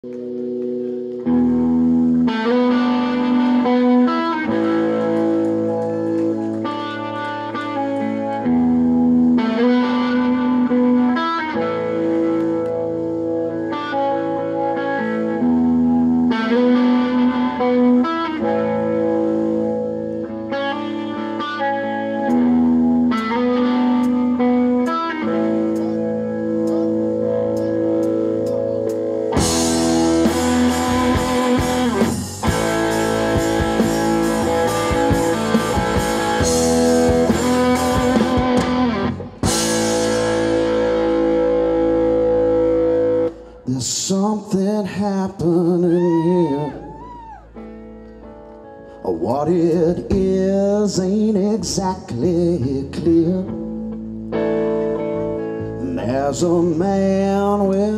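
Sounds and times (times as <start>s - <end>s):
rock band playing: 0.0s - 43.6s
electric guitar riff: 0.0s - 57.9s.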